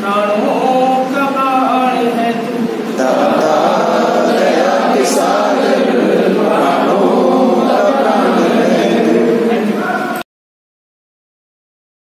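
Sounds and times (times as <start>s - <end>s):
group singing a prayer song: 2.9s - 10.2s.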